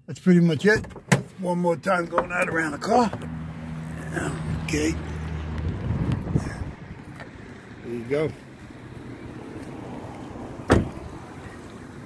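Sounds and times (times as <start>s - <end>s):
car door slamming: 10.6s - 11.2s.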